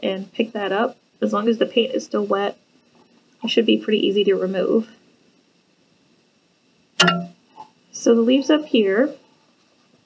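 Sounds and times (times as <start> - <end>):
sharp clink of hard object: 7.0 - 7.4.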